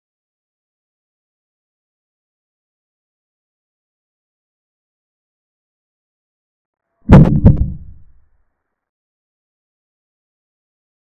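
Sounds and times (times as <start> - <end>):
short low thuds: 7.1 - 8.1.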